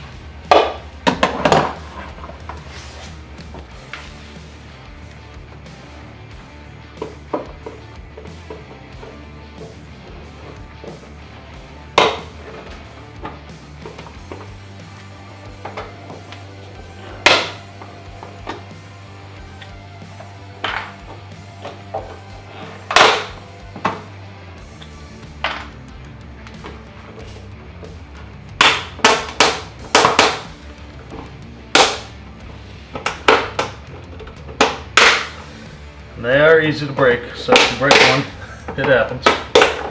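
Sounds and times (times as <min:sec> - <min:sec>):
quiet background music: 0:00.0 - 0:39.9.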